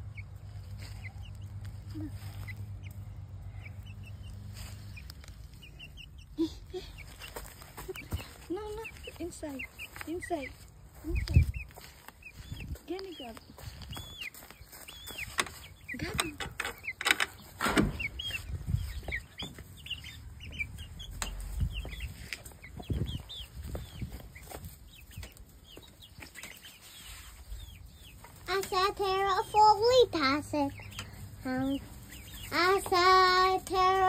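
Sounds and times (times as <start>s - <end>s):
hens clucking and chirping: 0.0s - 34.0s.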